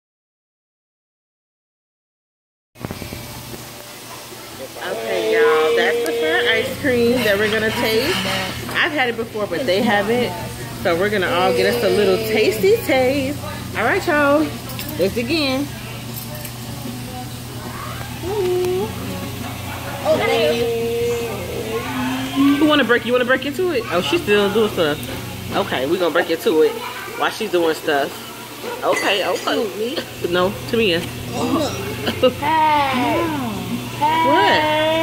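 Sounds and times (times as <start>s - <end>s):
background chatter: 3.7s - 35.0s
drawn-out vocal sound: 18.2s - 22.7s.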